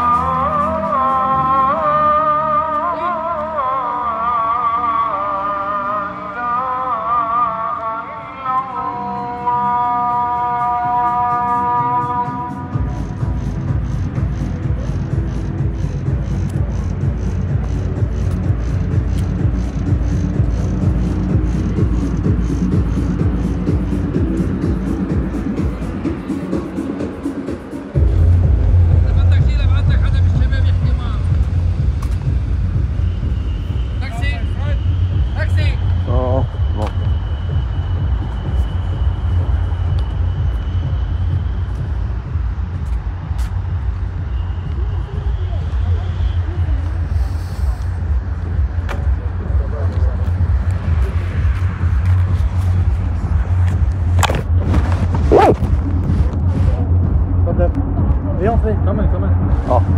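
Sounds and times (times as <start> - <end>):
man singing call to prayer: 0.0 - 12.8.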